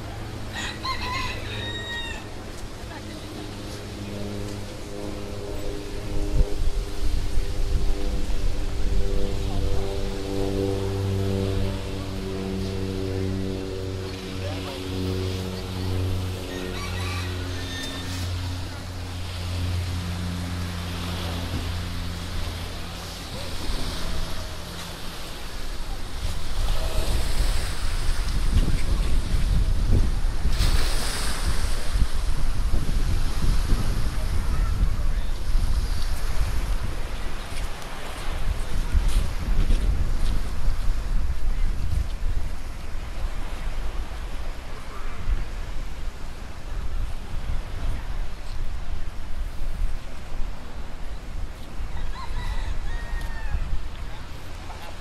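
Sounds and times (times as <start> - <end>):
waves washing against pier: 0.0 - 55.0
wind buffeting microphones: 0.0 - 55.0
steady low hum: 2.2 - 51.9.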